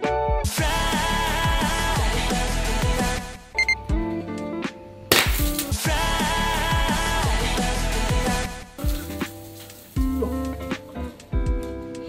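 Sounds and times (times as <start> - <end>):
pop music with beat: 0.0 - 12.0.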